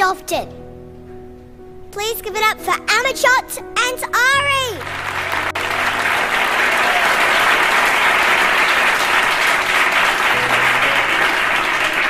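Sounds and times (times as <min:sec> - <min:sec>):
audience applauding: 0:04.7 - 0:12.0.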